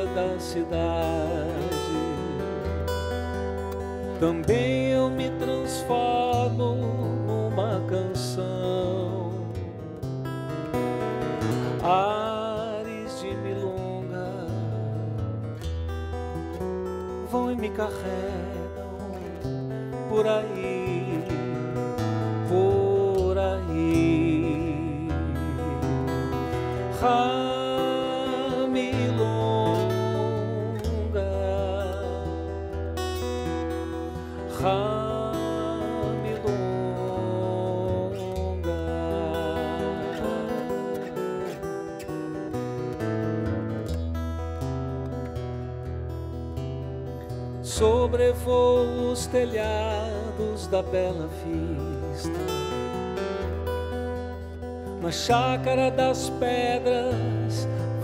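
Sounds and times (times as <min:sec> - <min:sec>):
acoustic guitar playing: 0:00.0 - 0:58.0.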